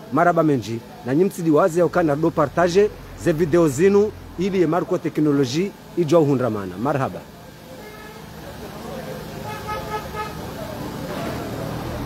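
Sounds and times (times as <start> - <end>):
traffic noise: 0.0 - 12.0
vehicle horn tooting: 7.8 - 8.4, 9.4 - 10.7.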